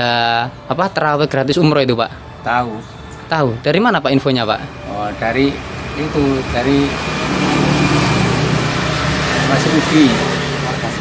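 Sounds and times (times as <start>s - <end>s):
engine running steadily: 4.4s - 11.0s.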